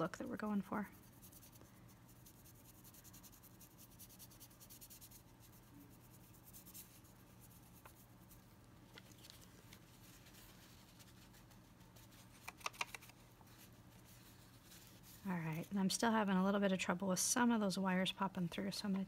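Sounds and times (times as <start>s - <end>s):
paintbrush scratching: 0.0s - 15.8s
low steady hum: 0.0s - 19.0s.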